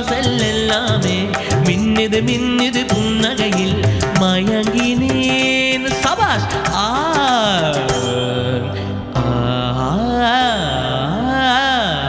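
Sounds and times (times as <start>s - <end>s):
karaoke backing track: 0.0s - 12.0s
man singing long notes: 0.0s - 12.0s.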